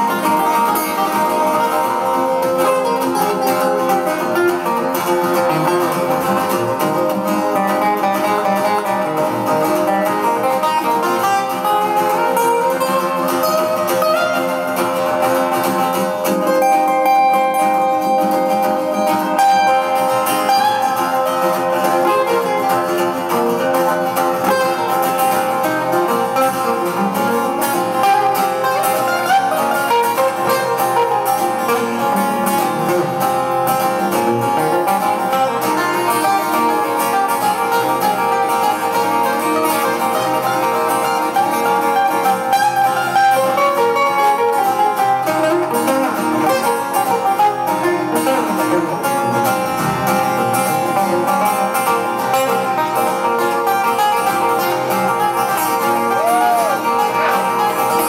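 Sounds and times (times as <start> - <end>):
acoustic guitars playing: 0.0 - 58.0.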